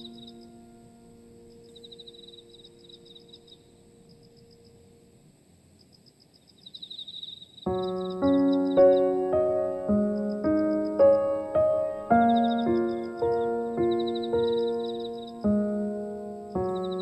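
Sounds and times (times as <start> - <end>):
slow piano music: 0.0 - 5.2, 7.7 - 17.0
crickets chirping: 0.0 - 17.0.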